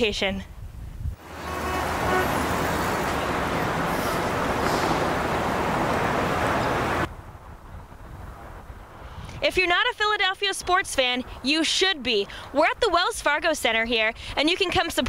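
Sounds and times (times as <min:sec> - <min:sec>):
city street traffic: 0:01.1 - 0:15.0.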